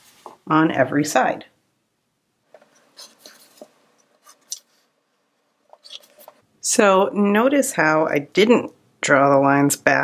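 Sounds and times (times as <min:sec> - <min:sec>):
pencil scratching on paper: 0:02.7 - 0:04.9.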